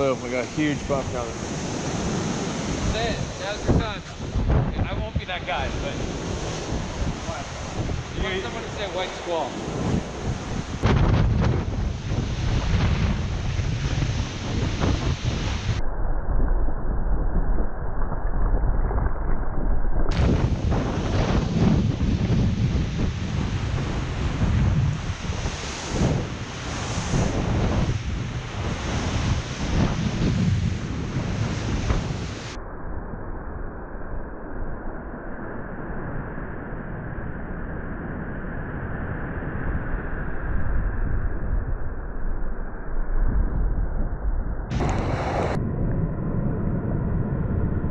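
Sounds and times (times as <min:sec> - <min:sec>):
water rushing along hull: 0:00.0 - 0:15.8, 0:20.1 - 0:32.6
wind buffeting microphone: 0:00.0 - 0:32.6, 0:38.8 - 0:47.9.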